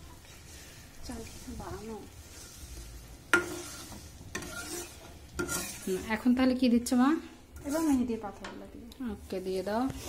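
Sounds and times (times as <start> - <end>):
oil sizzling: 0.0 - 10.0
metal spatula scraping pan: 1.2 - 8.7.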